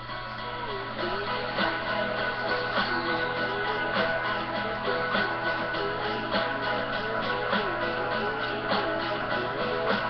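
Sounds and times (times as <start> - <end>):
backing track with strummed guitar: 0.0 - 10.0
girl singing pop song: 0.0 - 10.0.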